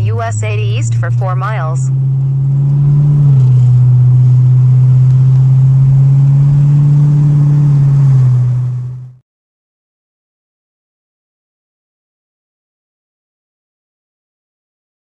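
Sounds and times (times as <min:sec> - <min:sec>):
car engine and road drone: 0:00.0 - 0:09.2.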